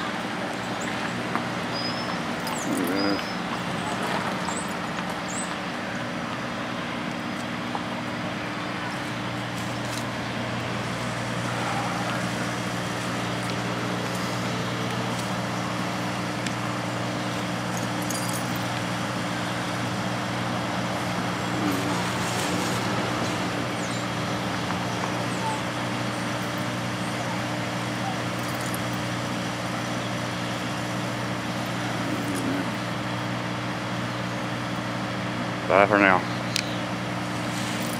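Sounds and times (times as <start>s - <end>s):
low mechanical hum: 0.0s - 37.9s
outdoor background noise: 0.0s - 37.9s.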